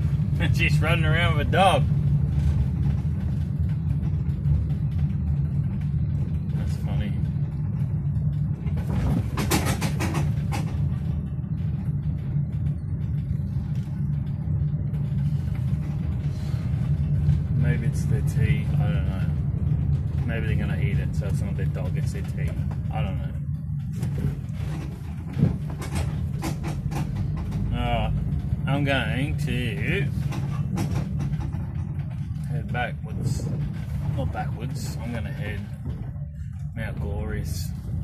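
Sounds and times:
car engine and tyres rumble: 0.0 - 38.0
rattling noise: 0.0 - 38.0.

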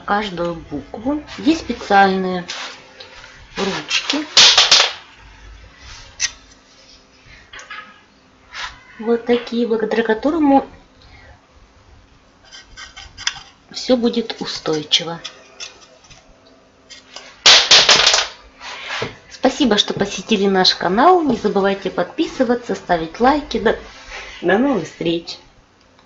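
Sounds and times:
plywood scraping on wood: 12.4 - 13.6
plywood clattering on wood: 17.5 - 18.4.

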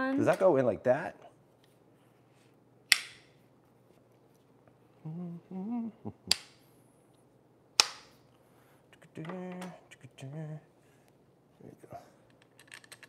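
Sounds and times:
low hum of voice: 5.0 - 6.3.

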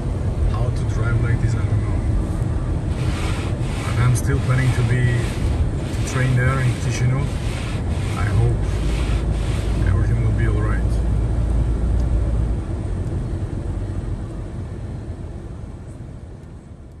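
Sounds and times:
car engine rumble: 0.0 - 17.0
tyres on wet road: 0.3 - 12.1.

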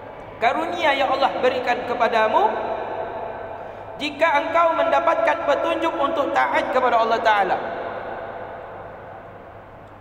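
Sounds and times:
low steady hiss and hum: 0.0 - 10.0
voice reverberating in hall: 0.0 - 10.0.

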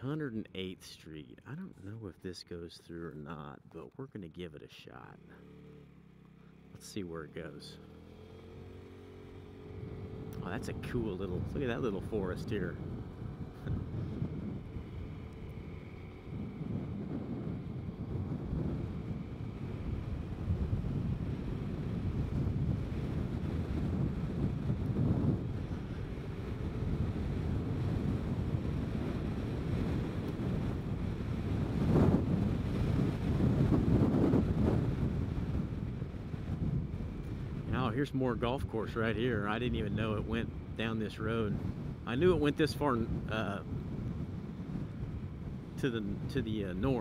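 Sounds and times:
wind buffeting microphone: 8.4 - 47.0.

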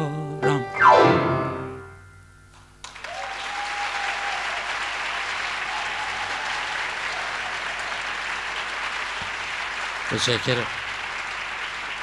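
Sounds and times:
piano chord: 0.0 - 2.5
audience applauding: 2.8 - 12.0.

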